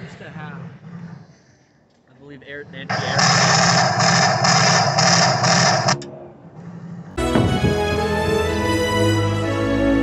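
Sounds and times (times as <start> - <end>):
simulated machine-gun fire: 2.9 - 6.0.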